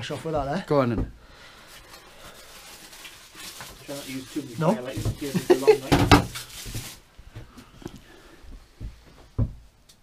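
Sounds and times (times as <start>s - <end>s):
handling or rustling noise: 1.6s - 8.0s
man speaking: 3.8s - 6.0s.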